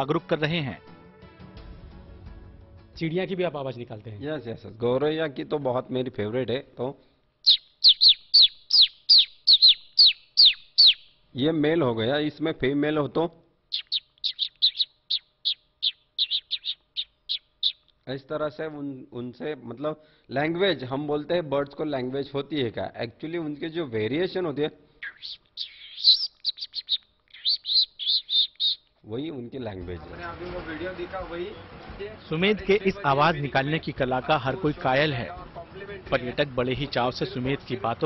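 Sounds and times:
man imitating sparrow chirps: 0:07.4 - 0:11.1, 0:13.7 - 0:17.8, 0:25.0 - 0:28.8.

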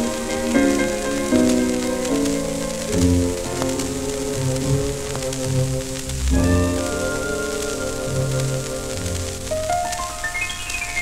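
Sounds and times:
instrumental music of held notes: 0:00.0 - 0:11.0
record surface hiss and crackle: 0:00.0 - 0:11.0.

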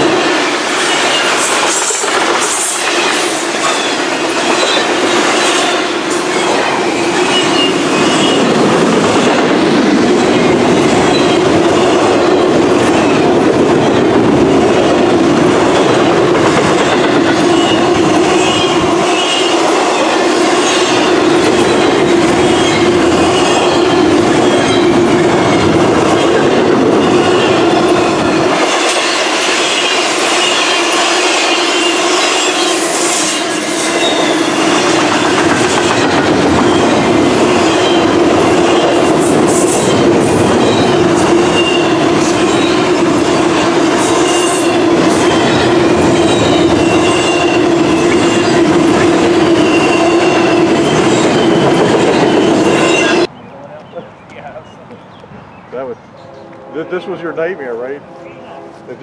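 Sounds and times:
train wheels rolling on rails: 0:00.0 - 0:58.1
high wheel squeal: 0:00.8 - 0:08.6, 0:10.4 - 0:12.1, 0:16.9 - 0:43.0, 0:44.1 - 0:53.3.

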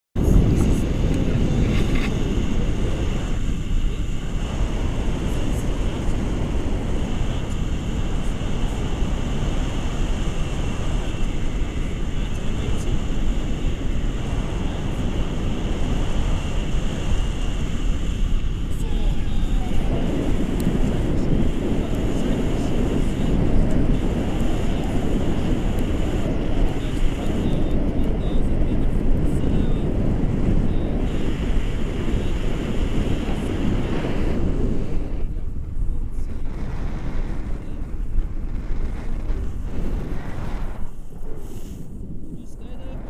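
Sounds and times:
wind rumbling on microphone: 0:00.2 - 0:43.0.

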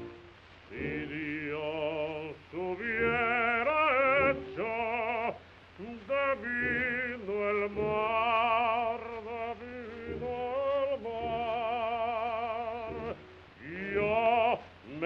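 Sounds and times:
operatic baritone singing: 0:00.0 - 0:15.0.

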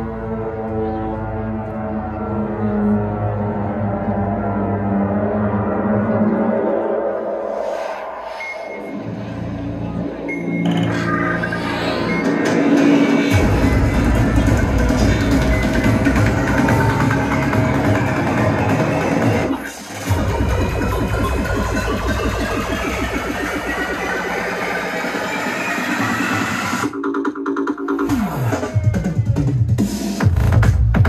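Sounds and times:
loud psytrance music: 0:00.0 - 0:31.0.

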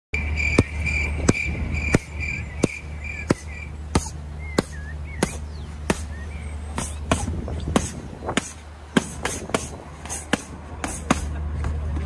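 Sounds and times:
pulsing high chirping: 0:00.2 - 0:08.0
steady low hum: 0:00.2 - 0:12.0
sharp smacks: 0:00.5 - 0:11.3.

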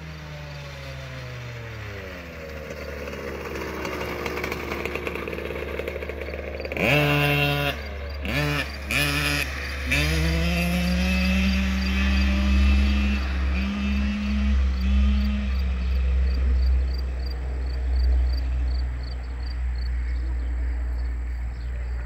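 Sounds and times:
dirt bike engine revving: 0:00.0 - 0:19.2.

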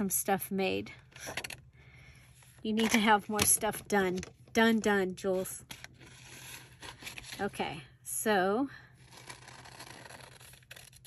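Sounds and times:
scissors cutting paper: 0:09.1 - 0:11.0.

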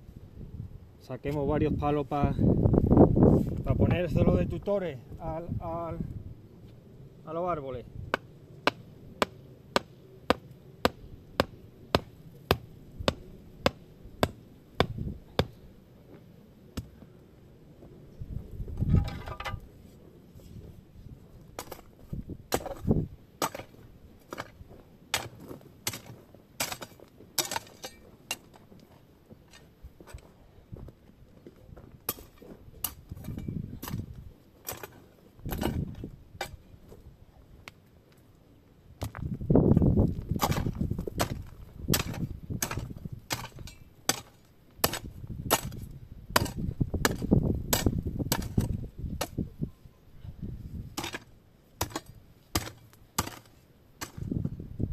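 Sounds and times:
earth scraping and thudding: 0:18.7 - 0:19.7, 0:21.5 - 0:28.7, 0:32.1 - 0:36.7, 0:39.0 - 0:49.4
spade striking stones: 0:18.9 - 0:19.7, 0:21.6 - 0:21.9, 0:22.5 - 0:28.6, 0:32.1 - 0:36.7, 0:40.3 - 0:49.4, 0:51.0 - 0:54.4.

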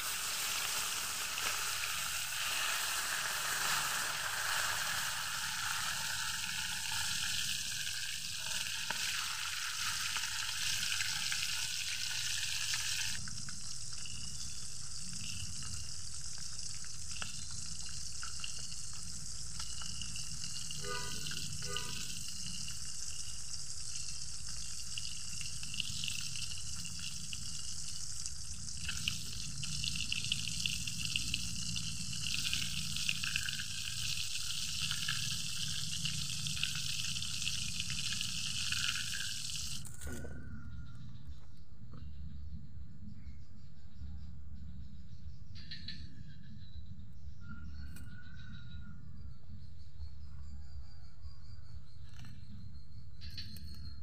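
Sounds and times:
fish sizzling in hot oil: 0:00.0 - 0:39.9.

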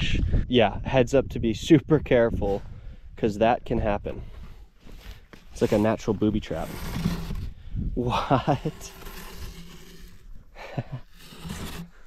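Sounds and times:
faint wind rumble on microphone: 0:00.0 - 0:04.6, 0:07.2 - 0:08.3
man laughing breathily: 0:08.0 - 0:08.7, 0:10.5 - 0:11.1.

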